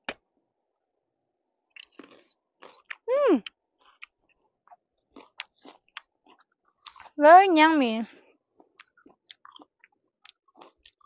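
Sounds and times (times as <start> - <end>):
person chewing raw cucumber: 1.7 - 7.2, 8.3 - 11.0.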